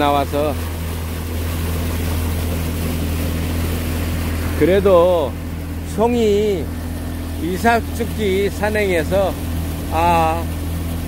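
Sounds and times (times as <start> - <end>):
motorboat engine running: 0.0 - 11.0
water rushing: 0.0 - 11.0
wind: 0.0 - 11.0.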